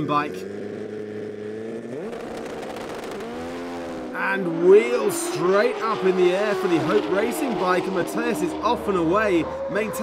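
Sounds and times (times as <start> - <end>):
motorcycle engines revving: 0.0 - 10.0.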